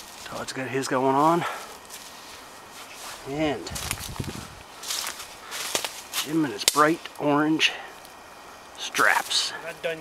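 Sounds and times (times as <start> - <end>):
footsteps in dry leaves: 0.0 - 7.1.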